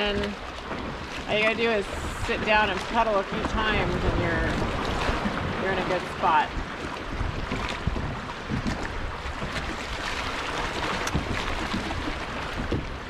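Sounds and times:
waves lapping against kayak hull: 0.0s - 13.0s
wind buffeting microphone: 0.0s - 13.0s.

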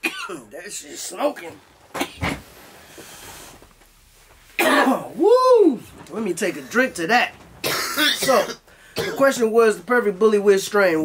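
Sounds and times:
man coughing harshly: 0.0s - 0.5s, 4.6s - 5.1s, 7.6s - 9.4s.

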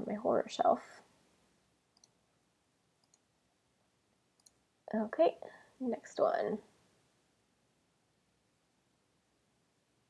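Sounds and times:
computer mouse clicks: 1.9s - 2.2s, 3.0s - 3.3s, 4.4s - 4.6s.

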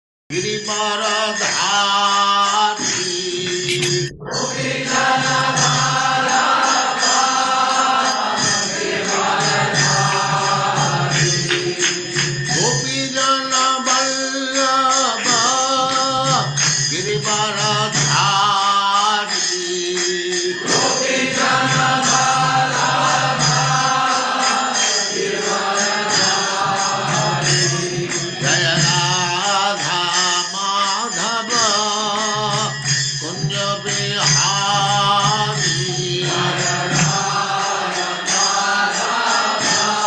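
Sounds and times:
devotional chanting: 0.3s - 40.0s
light percussive strikes: 2.8s - 12.9s.

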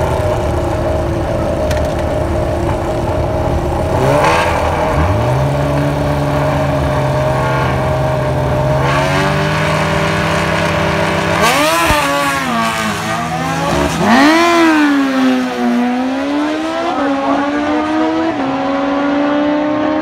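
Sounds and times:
motorcycle engine held at high revs: 0.0s - 20.0s
motorcycle engine revving: 0.0s - 20.0s.

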